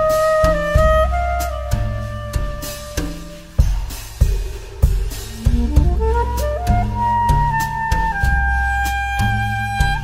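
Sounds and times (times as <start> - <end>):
deep bass: 0.0 - 10.0
instrumental theme music: 0.0 - 10.0
steady drum beat: 0.0 - 10.0.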